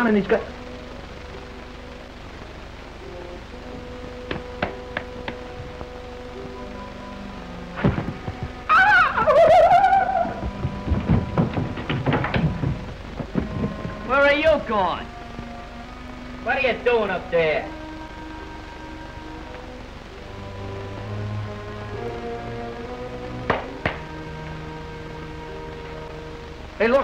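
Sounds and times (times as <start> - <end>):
soft held music notes: 0.0 - 27.0
thumps and knocks: 4.3 - 5.9, 7.8 - 8.7, 10.4 - 14.6, 23.5 - 24.1
loud wavering cry: 8.5 - 10.9.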